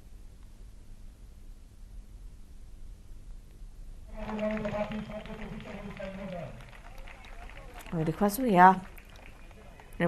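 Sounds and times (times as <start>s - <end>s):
man talking: 4.1s - 7.7s
faint distant voices: 4.1s - 10.0s.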